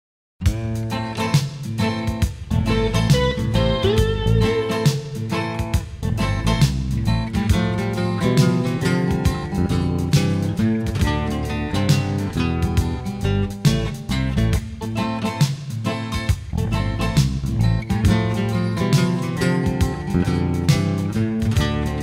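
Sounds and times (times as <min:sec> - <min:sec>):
bass guitar: 0:00.4 - 0:22.0
drum machine beat: 0:00.4 - 0:22.0
strummed acoustic guitar: 0:00.4 - 0:22.0
electric guitar: 0:00.5 - 0:22.0.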